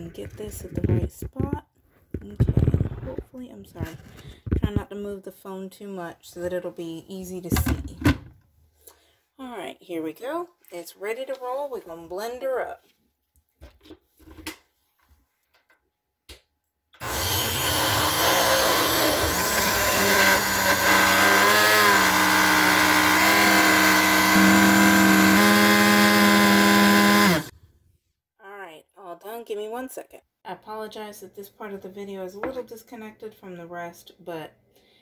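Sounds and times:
blender motor running: 0:17.0 - 0:27.5.

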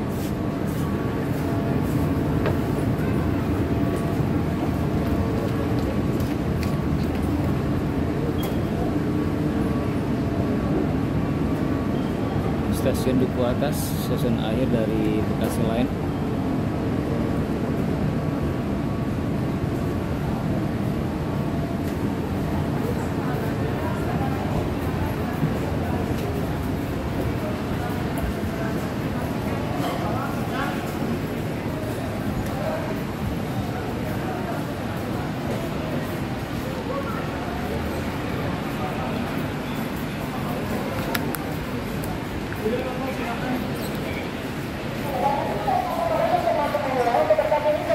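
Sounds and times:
indistinct voices of passengers: 0:00.0 - 0:47.9
rail station low rumble and hum: 0:00.0 - 0:47.9.

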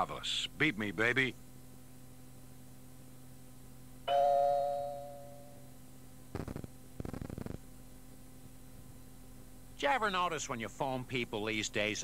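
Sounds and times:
faint steady hum: 0:00.0 - 0:12.0
ringing chime tone: 0:04.1 - 0:05.7.

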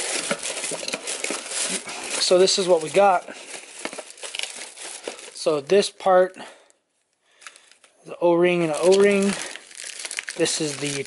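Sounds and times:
plastic bag rustling: 0:00.0 - 0:05.7, 0:08.5 - 0:11.0.

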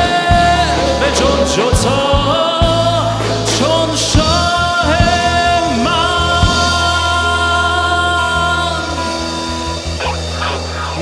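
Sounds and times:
drums: 0:00.0 - 0:11.0
low bass: 0:00.0 - 0:11.0
worship band playing: 0:00.0 - 0:11.0.

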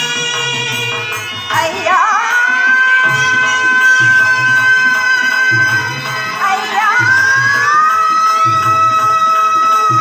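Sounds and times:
hand-drum beat: 0:00.0 - 0:10.0.

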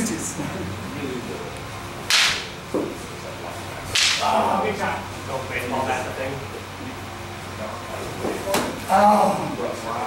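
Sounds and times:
wooden stick strike crack: 0:02.1 - 0:02.5, 0:03.9 - 0:04.2.

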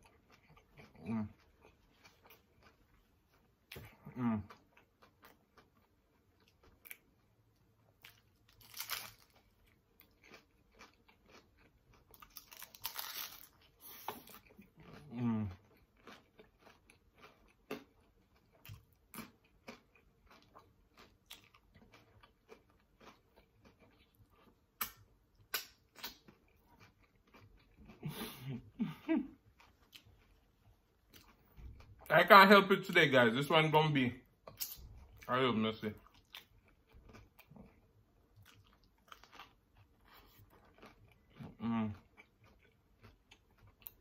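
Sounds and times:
wet chewing: 0:00.0 - 0:32.0, 0:35.9 - 0:44.0
chips crunching: 0:08.0 - 0:13.7.

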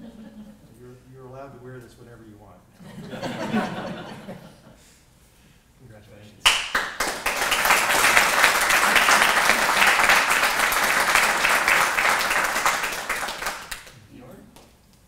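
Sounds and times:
audience applauding: 0:06.5 - 0:14.0.

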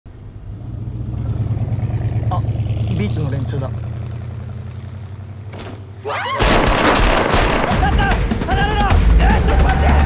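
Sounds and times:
car engine running: 0:00.1 - 0:08.4.

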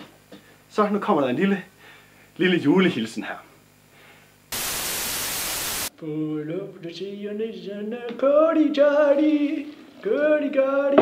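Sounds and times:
white-noise static: 0:00.0 - 0:05.9.

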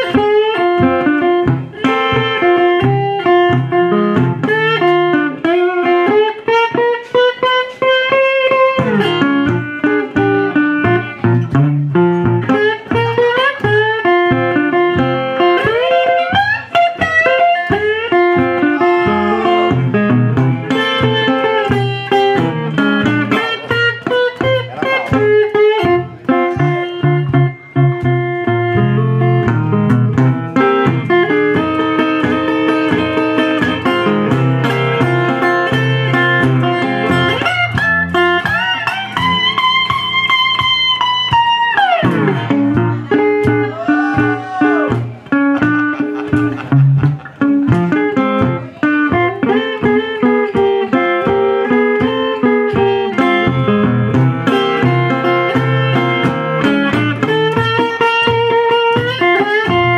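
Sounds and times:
blues on resonator guitar: 0:00.0 - 0:59.9.

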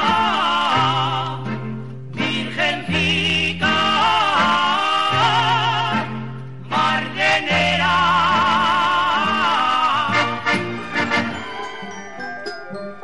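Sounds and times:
person singing with vibrato: 0:00.0 - 0:11.6
accordion: 0:00.0 - 0:13.0.

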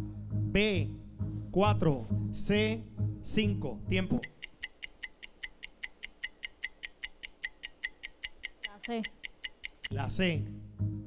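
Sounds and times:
countdown clock ticking: 0:04.2 - 0:10.1.

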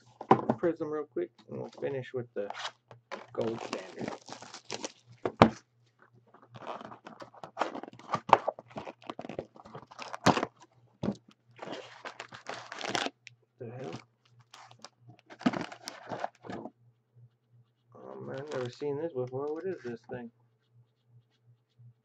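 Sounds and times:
cardboard and wrapping tearing: 0:02.5 - 0:05.6, 0:06.6 - 0:13.2, 0:13.8 - 0:16.6, 0:18.2 - 0:18.8.

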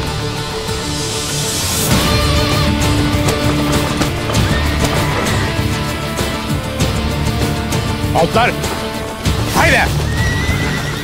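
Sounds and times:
background music: 0:00.0 - 0:11.0
horse whinnying: 0:02.2 - 0:06.1, 0:09.9 - 0:11.0.

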